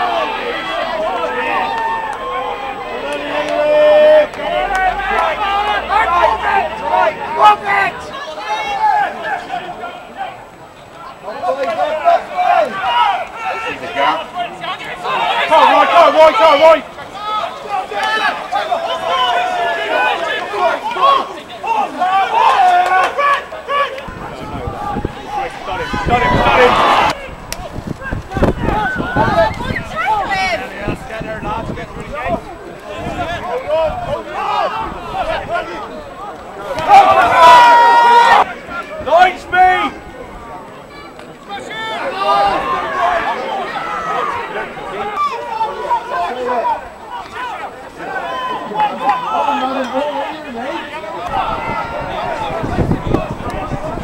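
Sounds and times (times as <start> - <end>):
voices shouting: 0.0 - 54.0.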